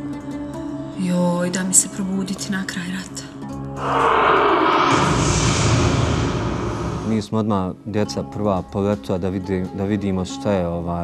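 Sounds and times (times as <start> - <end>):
jet aircraft passing: 3.8 - 7.2.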